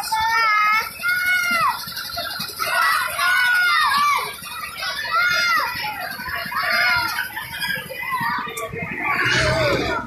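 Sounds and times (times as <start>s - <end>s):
riders whooping and squealing: 0.0s - 10.0s.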